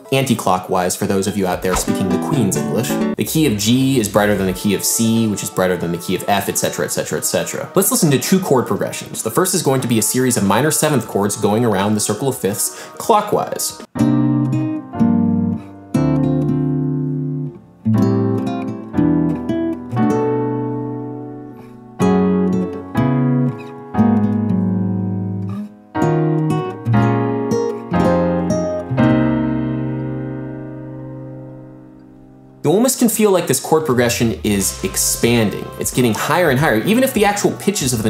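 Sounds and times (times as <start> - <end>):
piano chords: 1.4 - 7.2, 14.0 - 38.0
acoustic guitar chords: 1.6 - 4.8, 13.9 - 32.6, 33.9 - 38.0.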